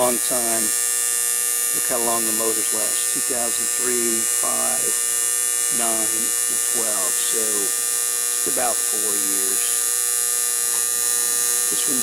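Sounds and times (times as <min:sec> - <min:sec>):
contactor buzzing with mains hum: 0:00.0 - 0:12.0.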